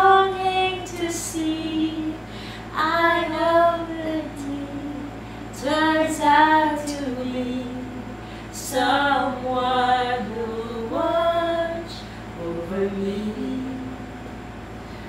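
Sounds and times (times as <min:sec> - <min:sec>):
woman singing unaccompanied: 0:00.0 - 0:14.3.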